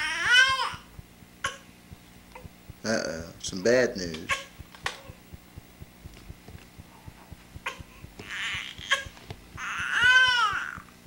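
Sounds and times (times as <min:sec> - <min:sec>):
baby cooing: 0:00.0 - 0:01.7, 0:07.6 - 0:10.9
baby mouth clicks: 0:00.0 - 0:02.8, 0:04.1 - 0:11.0.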